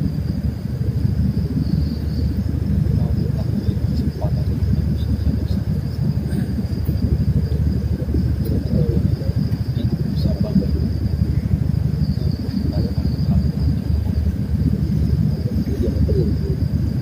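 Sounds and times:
low rumble: 0.0 - 17.0
night insects droning: 0.0 - 17.0.

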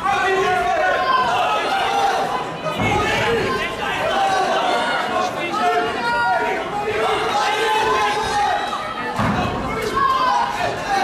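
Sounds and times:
crowd chattering and shouting: 0.0 - 11.0.

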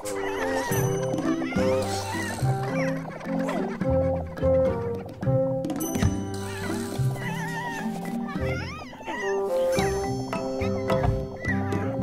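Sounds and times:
wavering cartoon-creature vocals: 0.0 - 4.6
cartoon background music: 0.0 - 12.0.

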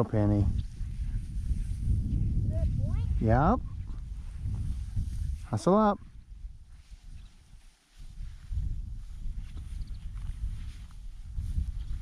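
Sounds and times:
wind rumble on microphone: 0.0 - 12.0
footsteps through dry grass: 0.5 - 12.0.

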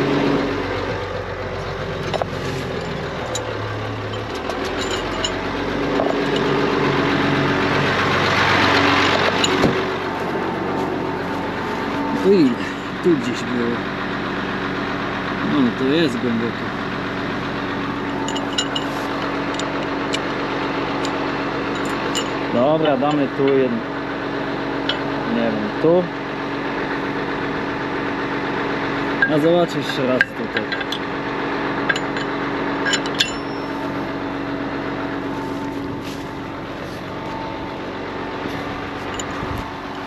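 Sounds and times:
tractor engine idling: 0.0 - 40.0.

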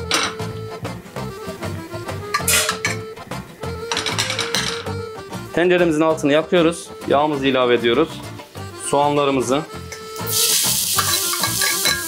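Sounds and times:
background music with steady beat: 0.0 - 12.0
metal spoon scraping frying pan: 2.3 - 3.0, 9.9 - 12.0
meat sizzling: 9.9 - 12.0.

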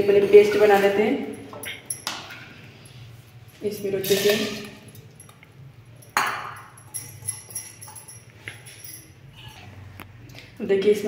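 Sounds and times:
metallic clinks: 1.3 - 9.7
kitchenware clattering: 3.6 - 9.7.

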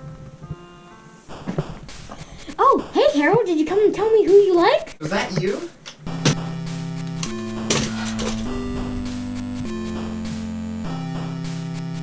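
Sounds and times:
toys rustling and clicking: 7.1 - 8.8.

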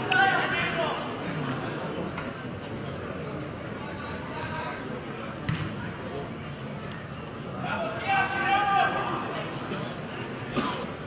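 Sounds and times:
faint voices: 0.0 - 11.0.

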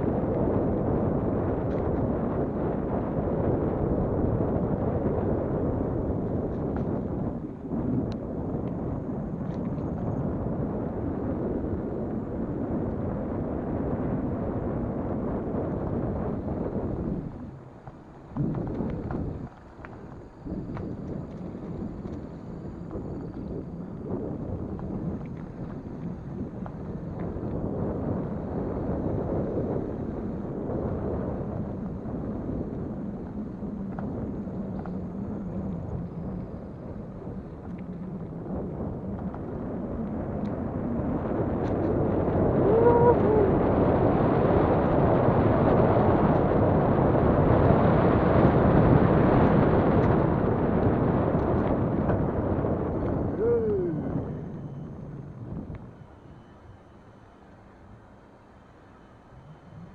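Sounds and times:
bicycle tyre rumble: 0.0 - 59.9
wind buffeting microphone: 0.0 - 59.9.

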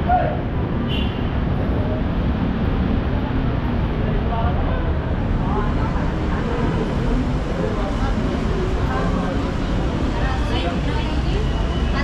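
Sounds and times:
city street traffic: 0.0 - 12.0
indistinct voices: 3.0 - 12.0.

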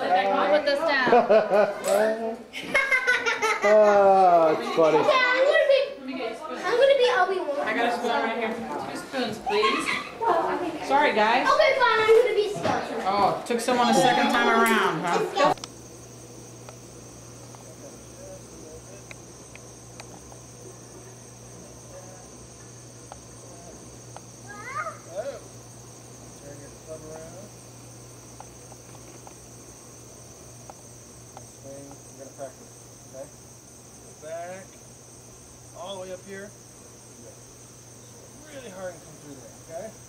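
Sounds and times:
insects chirping: 0.0 - 40.0
low steady hum: 13.3 - 40.0.

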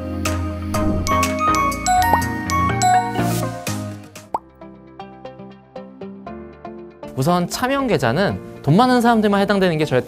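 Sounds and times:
light background music: 0.0 - 10.0
rising pop sound effect: 0.7 - 3.5.

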